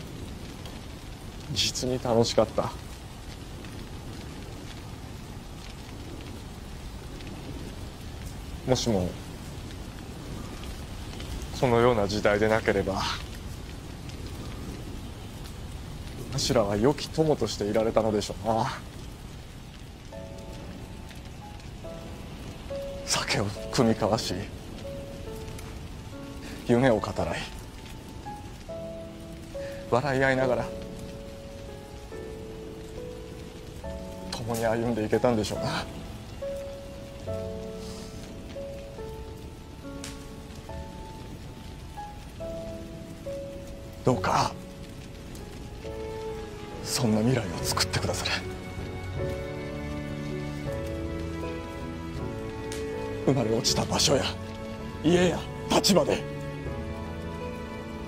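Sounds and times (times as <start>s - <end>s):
fire crackling: 0.0s - 58.0s
fire rushing: 0.0s - 58.0s
soft background music: 0.0s - 58.0s.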